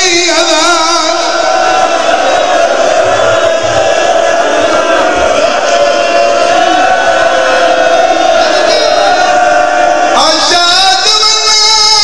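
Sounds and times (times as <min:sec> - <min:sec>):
crowd voices: 0:00.0 - 0:12.0
voice chanting through loudspeakers: 0:00.0 - 0:12.0.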